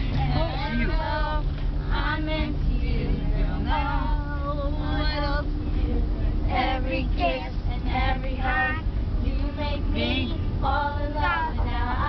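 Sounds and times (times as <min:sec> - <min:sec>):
children and women singing: 0:00.0 - 0:12.0
low vehicle rumble: 0:00.0 - 0:12.0.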